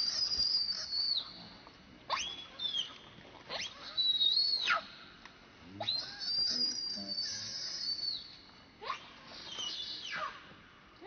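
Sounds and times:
baby monkey screaming: 0:00.0 - 0:01.2, 0:03.5 - 0:04.9, 0:05.8 - 0:08.1.

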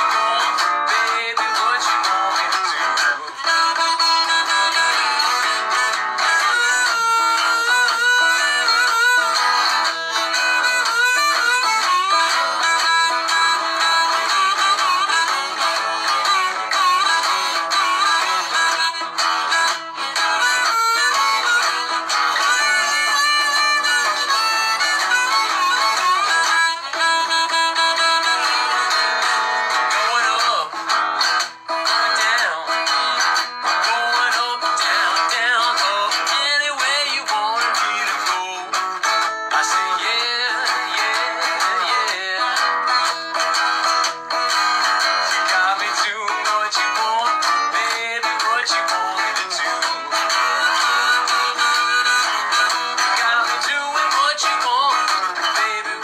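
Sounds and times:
man singing: 0:00.0 - 0:43.4, 0:45.0 - 0:56.0
harmonica: 0:00.0 - 0:56.0
strummed guitar: 0:00.0 - 0:56.0.

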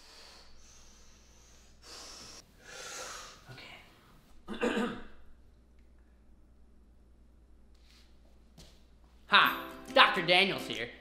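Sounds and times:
man breathing heavily: 0:00.0 - 0:03.5.

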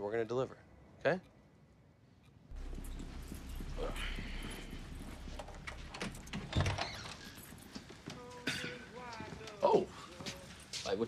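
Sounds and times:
low rumble: 0:02.5 - 0:07.4.

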